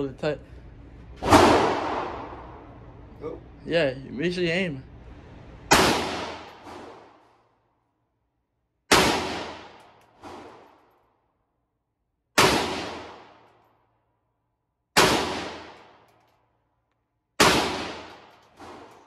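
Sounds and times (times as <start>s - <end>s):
rifle shots echoing indoors: 1.2s - 3.0s, 5.7s - 7.7s, 8.8s - 11.6s, 12.2s - 19.0s.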